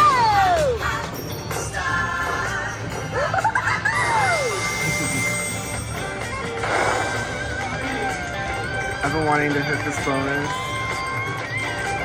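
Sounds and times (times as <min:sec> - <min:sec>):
slot machine music: 0:00.0 - 0:12.0
held tone: 0:04.2 - 0:06.2.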